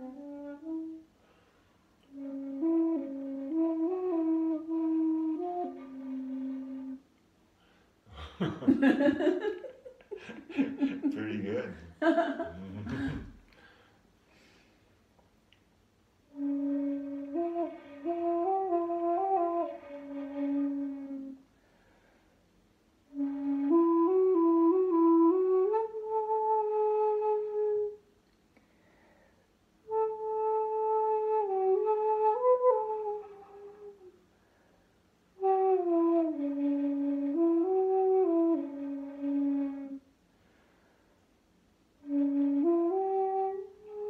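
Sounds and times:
bamboo flute playing: 0.0 - 1.1, 2.0 - 7.1, 16.3 - 21.5, 23.1 - 28.0, 29.9 - 34.2, 35.4 - 40.1, 42.0 - 44.0.

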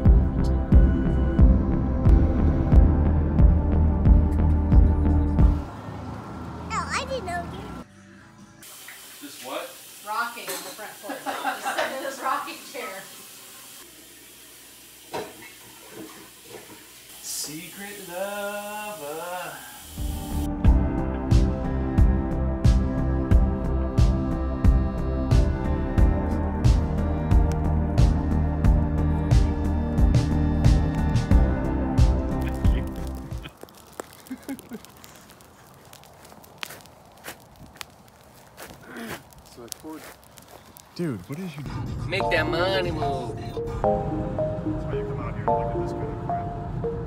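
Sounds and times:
running tap hiss: 8.6 - 20.5
footsteps: 32.5 - 41.9.

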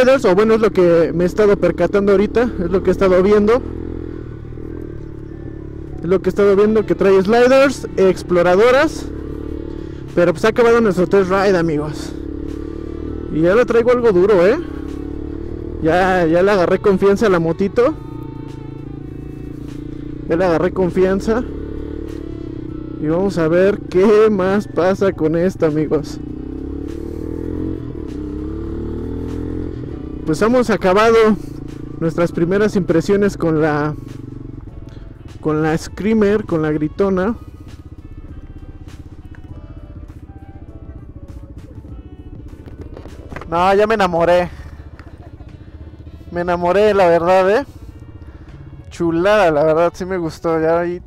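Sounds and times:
motorcycle engine running: 0.0 - 51.0.

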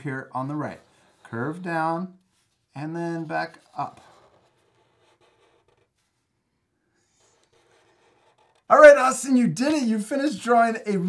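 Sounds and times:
marker drawing on paper: 0.0 - 11.0.

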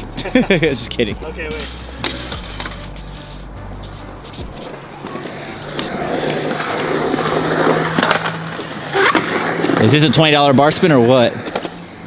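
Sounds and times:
skateboard wheels rolling on concrete: 0.0 - 12.0
skateboard clack: 4.5 - 10.0.

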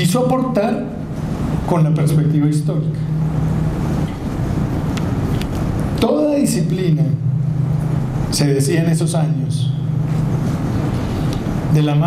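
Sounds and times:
low rumbling: 0.0 - 12.0.

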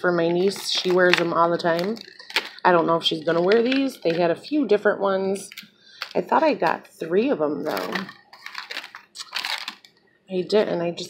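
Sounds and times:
plastic packaging crinkling: 0.0 - 4.5, 5.3 - 6.8, 7.6 - 10.0.

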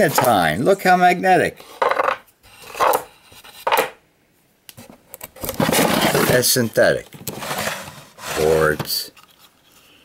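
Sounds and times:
wooden drawer scraping: 5.4 - 6.6, 7.2 - 9.1.

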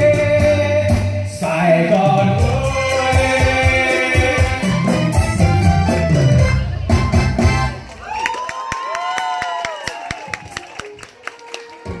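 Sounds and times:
dance music: 0.0 - 8.0, 10.4 - 12.0
audience clapping: 7.8 - 12.0
people whooping: 7.9 - 11.3.

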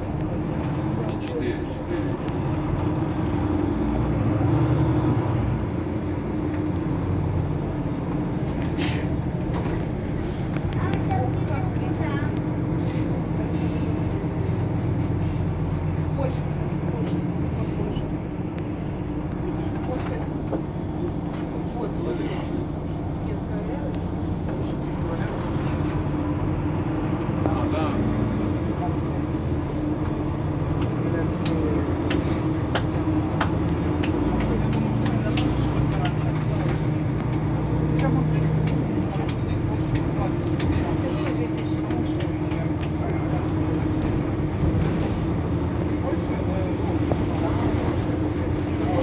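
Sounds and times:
people talking: 0.0 - 3.6, 6.0 - 26.5, 27.2 - 49.0
bus engine idling: 0.0 - 49.0.

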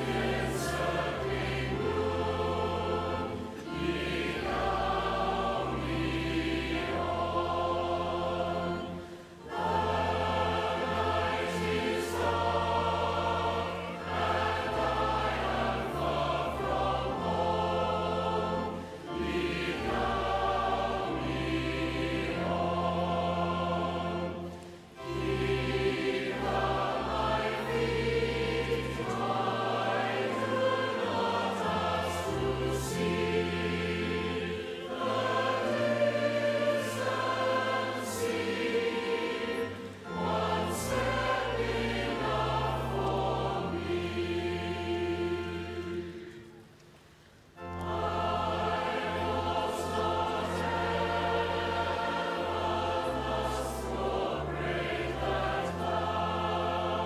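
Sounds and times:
large choir singing: 0.0 - 46.8, 47.5 - 57.0.

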